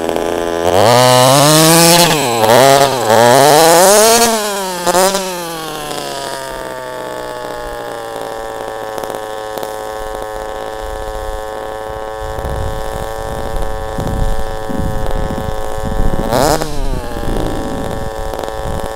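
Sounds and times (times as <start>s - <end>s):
small two-stroke engine revving: 0.0s - 18.9s.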